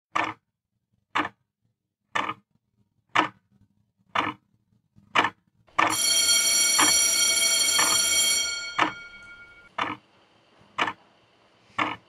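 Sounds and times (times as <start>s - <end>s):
wall clock ticking: 3.2s - 3.4s, 5.2s - 10.0s, 10.8s - 11.0s
bell ringing: 5.8s - 9.7s.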